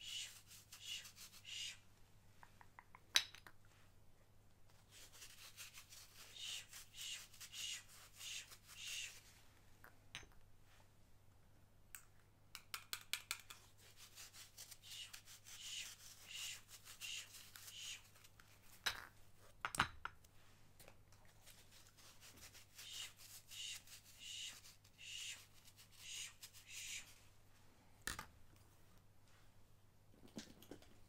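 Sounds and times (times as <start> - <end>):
short scratchy rubs: 4.9 - 9.3, 13.8 - 18.3, 21.4 - 27.2.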